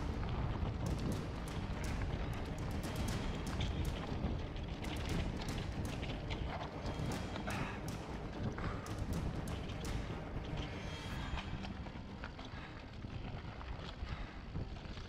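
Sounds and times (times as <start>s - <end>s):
bike clacking and rattling: 0.0s - 10.7s.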